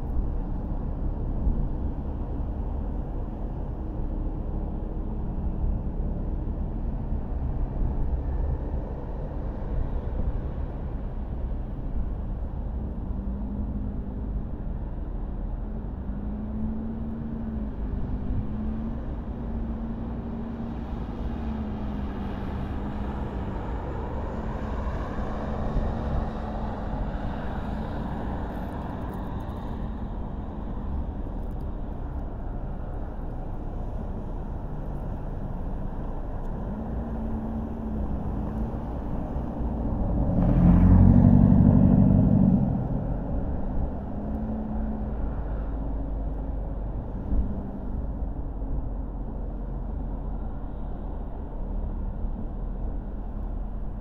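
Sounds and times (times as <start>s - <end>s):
car engine hum and road rumble: 0.0s - 54.0s
louder engine sound: 39.1s - 45.4s.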